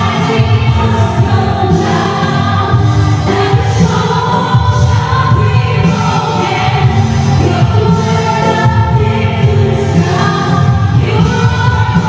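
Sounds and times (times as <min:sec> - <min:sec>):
many voices singing along: 0:00.0 - 0:12.0
woman singing: 0:00.0 - 0:12.0.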